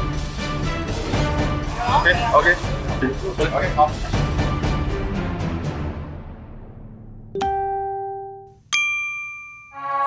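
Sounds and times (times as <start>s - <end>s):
bell-like chime dings: 8.7s - 10.0s.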